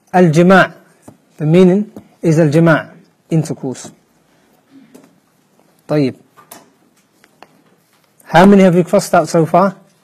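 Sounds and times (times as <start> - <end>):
faint clicks and taps: 4.9 - 8.3.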